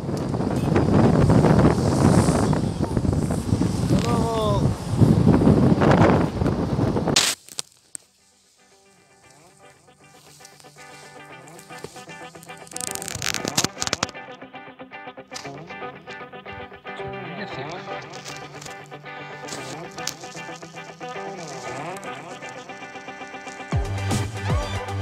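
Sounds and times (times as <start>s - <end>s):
road noise: 0.0s - 7.2s
wind rushing over microphone: 0.0s - 7.2s
background music: 13.8s - 25.0s.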